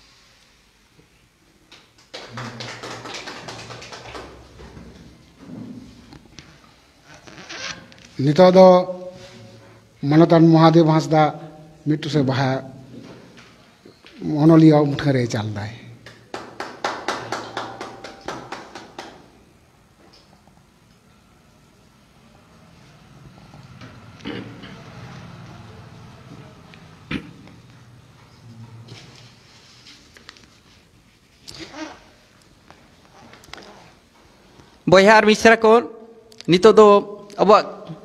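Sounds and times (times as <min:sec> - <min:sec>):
group clapping: 0:01.7 - 0:05.0, 0:16.0 - 0:19.4.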